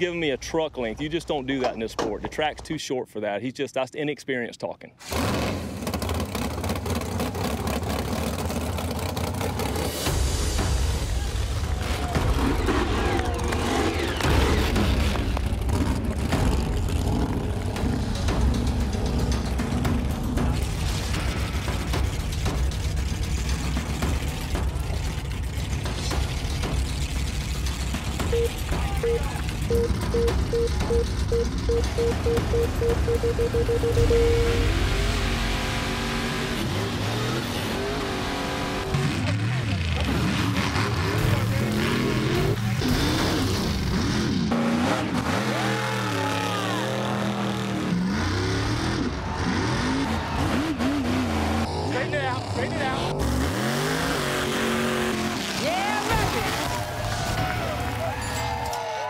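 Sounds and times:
truck engines revving: 5.0s - 59.0s
beeps: 28.3s - 35.0s.

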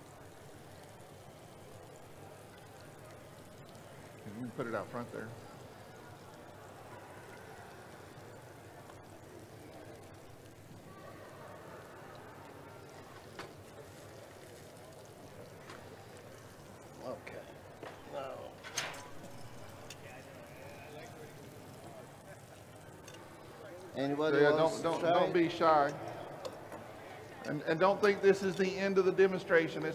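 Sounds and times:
murmur of distant voices: 0.0s - 29.9s.

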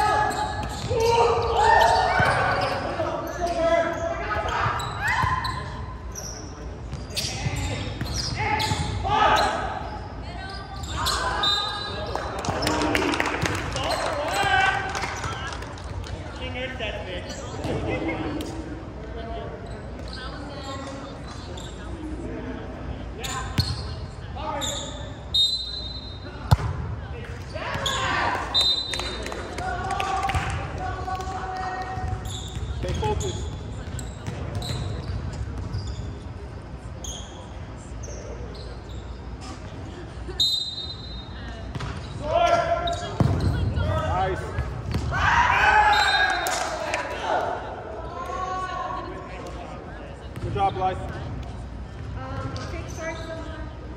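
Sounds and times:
players calling out: 0.0s - 15.6s.

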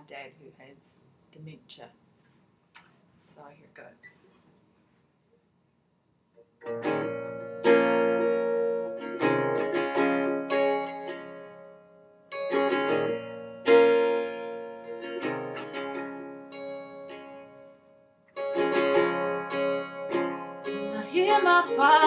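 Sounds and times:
acoustic guitar playing: 6.5s - 22.0s.

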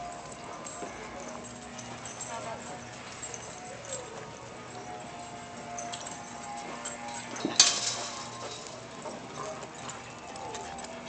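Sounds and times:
background music: 0.0s - 11.0s
dogs whining: 0.0s - 11.0s.

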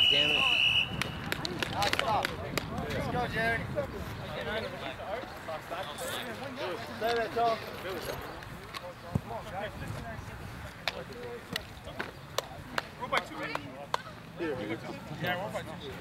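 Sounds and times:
men talking and calling out: 0.0s - 16.0s.

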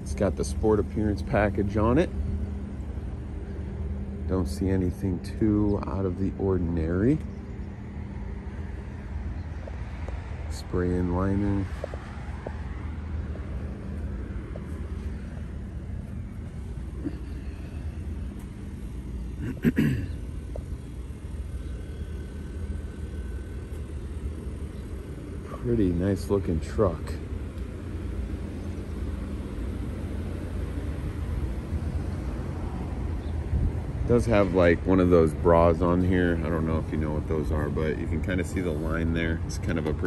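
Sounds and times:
low mechanical hum: 0.0s - 40.0s
person clearing throat: 19.4s - 20.2s.

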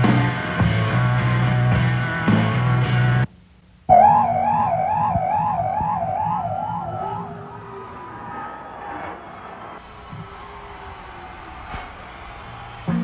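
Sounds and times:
electric guitar feedback warbling: 3.9s - 9.7s.

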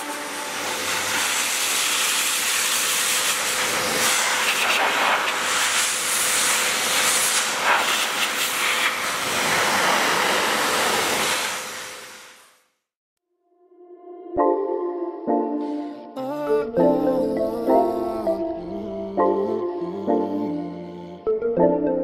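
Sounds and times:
steam cleaner hissing: 0.0s - 12.6s.

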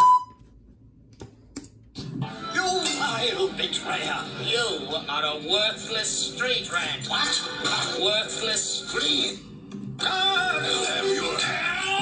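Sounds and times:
cartoon audio from speakers: 2.0s - 12.0s.

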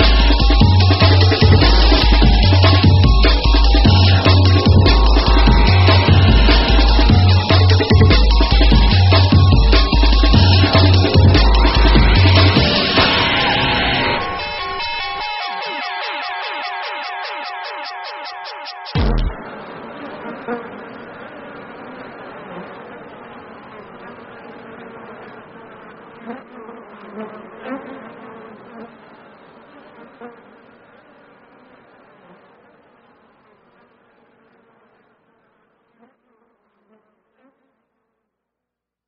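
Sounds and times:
electronic blips: 0.0s - 19.7s
dense buzzing electronic drone: 0.0s - 26.2s.

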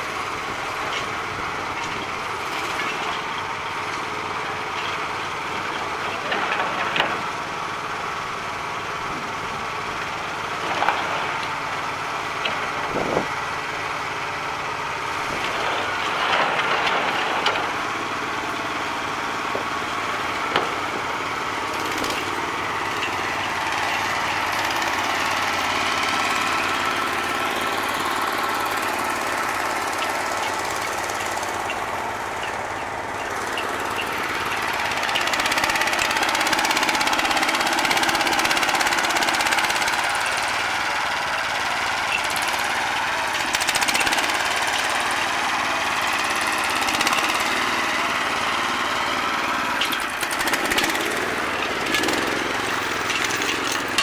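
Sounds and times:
small engine running under load: 0.0s - 54.0s.

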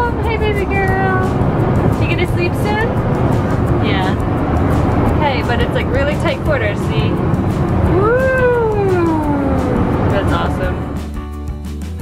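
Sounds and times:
airliner cabin noise: 0.0s - 10.9s.

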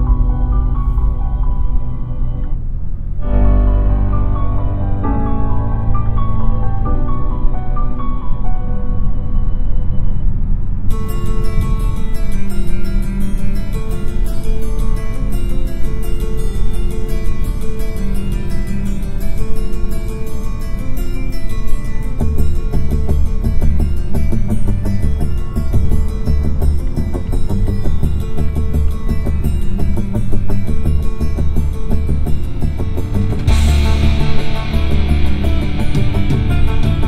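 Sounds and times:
rock music in car cabin: 21.4s - 37.0s.

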